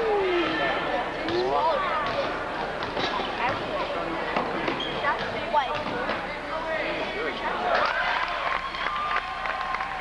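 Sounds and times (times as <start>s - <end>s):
crowd voices: 0.0s - 10.0s
sneakers squeaking on floor: 4.4s - 6.0s.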